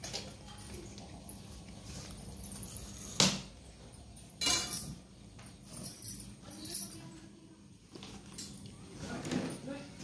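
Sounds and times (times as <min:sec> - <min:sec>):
glass bangles clinking: 0:00.0 - 0:07.2.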